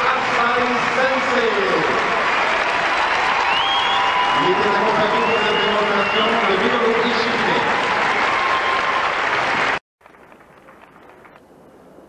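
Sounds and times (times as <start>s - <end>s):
audience applauding: 0.0s - 11.4s.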